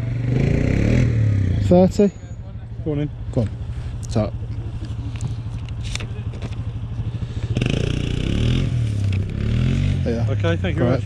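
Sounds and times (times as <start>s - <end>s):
vehicle engine revving: 0.0s - 2.1s, 2.9s - 11.0s.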